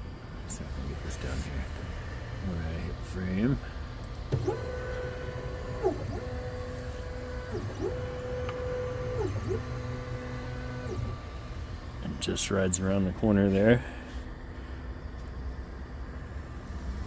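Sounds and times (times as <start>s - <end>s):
stepper motors whining: 0.5s - 17.0s.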